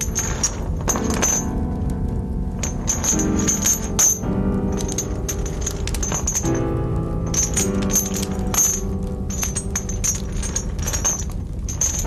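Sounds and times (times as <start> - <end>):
metal chains clinking: 0.0 - 1.9, 2.5 - 12.0
music with sustained notes: 0.0 - 12.0.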